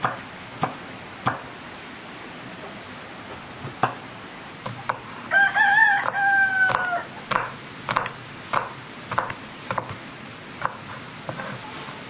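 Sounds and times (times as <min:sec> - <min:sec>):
rooster crowing: 0:05.3 - 0:07.1
knife chopping on wooden board: 0:06.0 - 0:10.0, 0:10.6 - 0:11.6.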